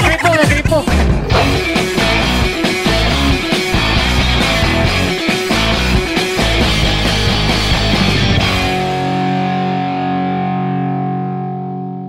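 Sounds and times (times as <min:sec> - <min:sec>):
distorted electric guitar chord: 0:01.2 - 0:12.0.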